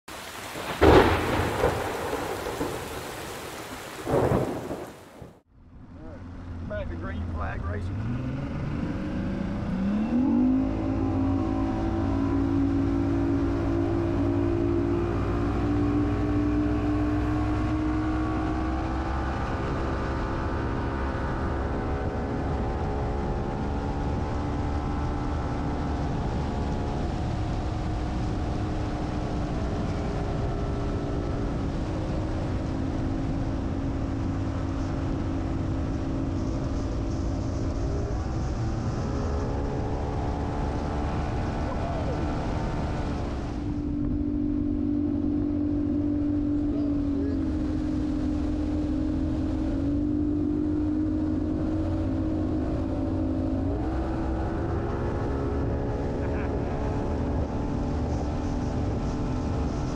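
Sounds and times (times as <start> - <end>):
thunderclaps: 0.4 - 5.4.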